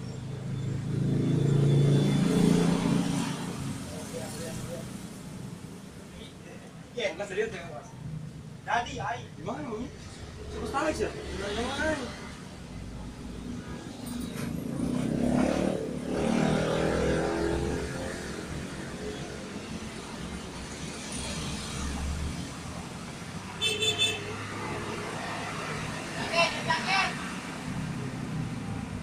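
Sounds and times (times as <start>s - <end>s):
vehicle engine passing: 10.0s - 19.0s.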